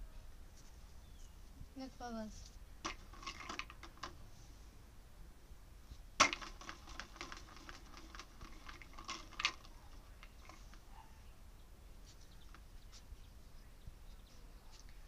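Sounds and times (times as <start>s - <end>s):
treats rattling in plastic bottle: 2.8s - 4.2s, 6.2s - 10.8s.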